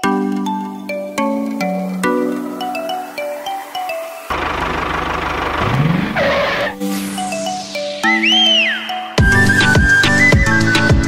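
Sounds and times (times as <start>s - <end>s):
music: 0.0s - 4.3s, 6.6s - 11.0s
engine revving: 4.3s - 7.4s
tyres skidding screech: 4.3s - 7.5s.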